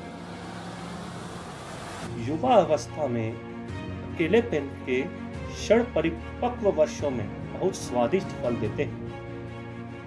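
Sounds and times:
hiss-like noise: 0.1 - 2.1
slow sad background music: 2.0 - 10.0.

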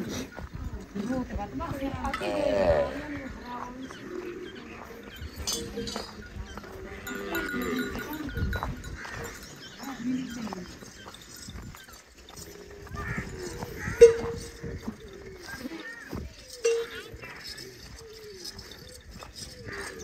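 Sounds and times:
goats bleating: 6.8 - 9.5.

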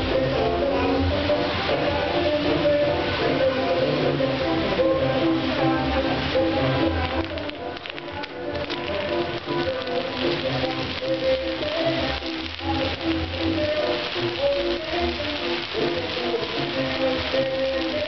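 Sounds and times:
fireworks crackling and sizzling: 1.7 - 18.0.

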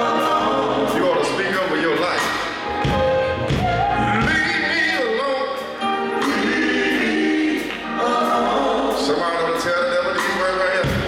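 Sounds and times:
gospel band music: 0.0 - 11.0.

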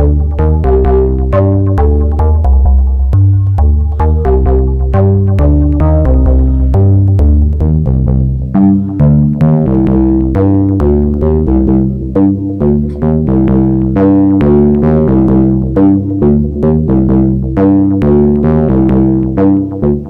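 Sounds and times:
repeating synth notes: 0.0 - 20.0.

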